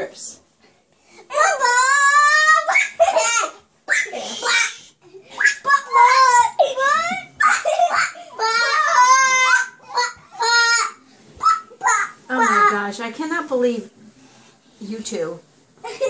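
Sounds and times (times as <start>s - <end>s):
children squealing and laughing: 1.3s - 12.6s.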